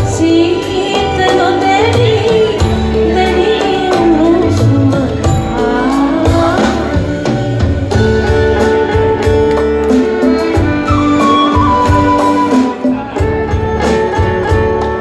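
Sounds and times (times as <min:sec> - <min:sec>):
live band playing instrumental: 0:00.0 - 0:15.0.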